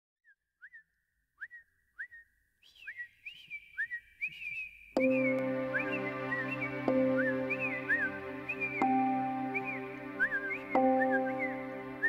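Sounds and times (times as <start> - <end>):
faint held whistle tone: 0.2 - 12.0
whistled bird-like chirps: 0.2 - 12.0.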